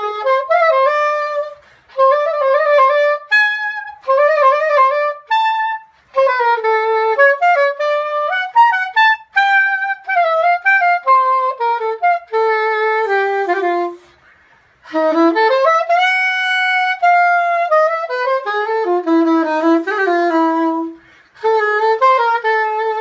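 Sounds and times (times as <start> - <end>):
soprano saxophone jazz melody: 0.0 - 23.0.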